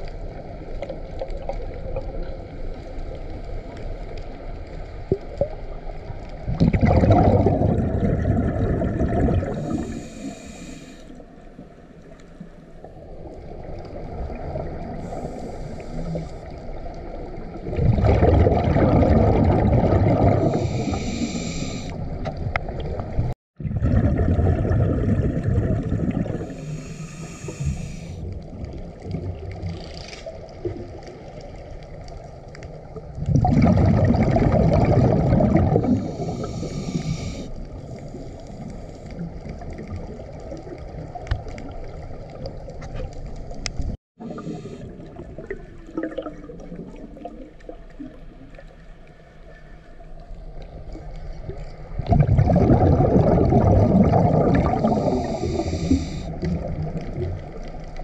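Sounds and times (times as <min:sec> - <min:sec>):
low underwater rumble: 0:00.0 - 0:58.0
exhaled bubbles rushing: 0:05.1 - 0:10.4, 0:12.9 - 0:32.0, 0:32.8 - 0:48.7, 0:50.8 - 0:58.0
hissing regulator breaths: 0:09.6 - 0:11.3, 0:15.0 - 0:16.5, 0:20.4 - 0:22.1, 0:26.4 - 0:28.2, 0:35.9 - 0:39.1, 0:54.8 - 0:56.4.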